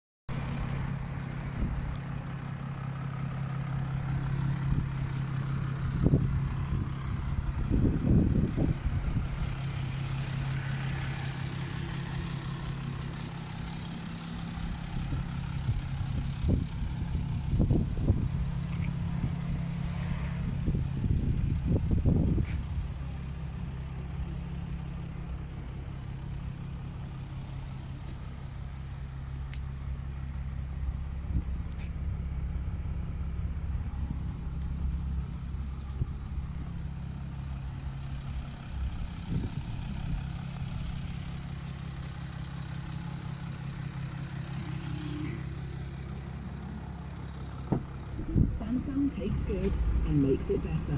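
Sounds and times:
car engine idling: 0.3s - 50.9s.

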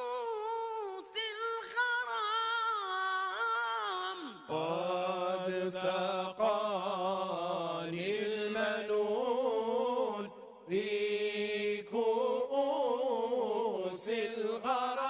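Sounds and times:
person chanting religious song: 0.0s - 15.0s.

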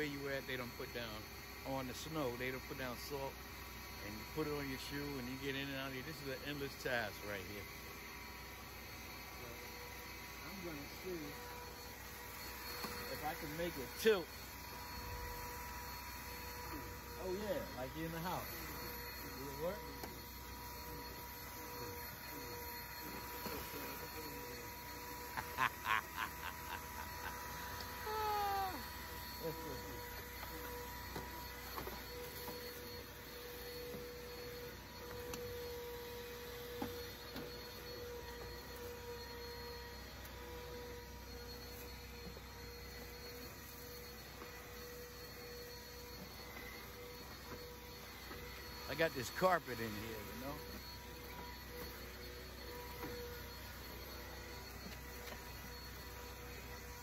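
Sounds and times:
vacuum cleaner running: 0.0s - 57.0s
falling call: 25.4s - 29.0s.

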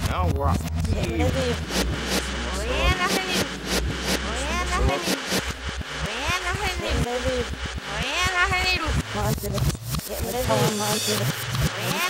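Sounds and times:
reversed speech babble: 0.0s - 12.0s.

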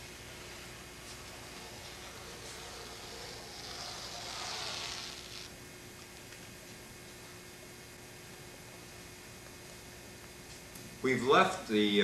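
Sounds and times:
rotary cutter through cloth: 0.0s - 5.6s.

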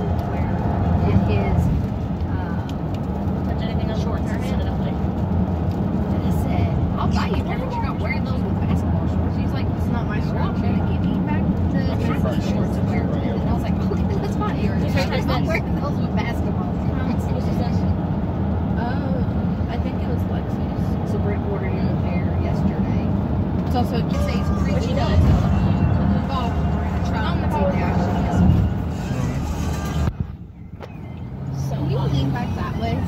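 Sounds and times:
car road and engine rumble: 0.0s - 33.0s
faint voices talking: 18.8s - 30.2s.

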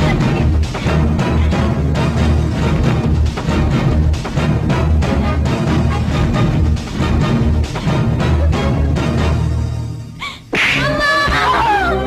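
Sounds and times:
dramatic background music: 0.0s - 12.0s
woman's anguished cry: 10.8s - 12.0s.

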